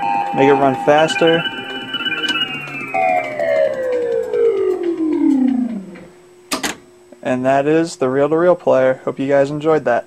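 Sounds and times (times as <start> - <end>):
tape music slowing down in pitch: 0.0 - 6.4.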